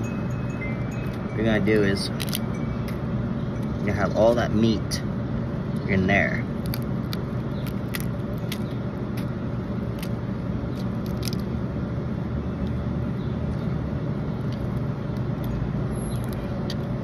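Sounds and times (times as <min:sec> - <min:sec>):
low background rumble: 0:00.0 - 0:17.0
crab shell cracking by hand: 0:02.2 - 0:02.4, 0:06.6 - 0:11.5.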